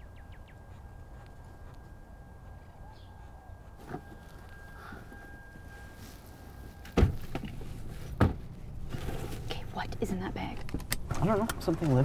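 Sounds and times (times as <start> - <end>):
faint high steady tone: 0.0 - 7.0
low steady rumble: 0.0 - 11.8
car doors slamming shut: 7.0 - 7.5.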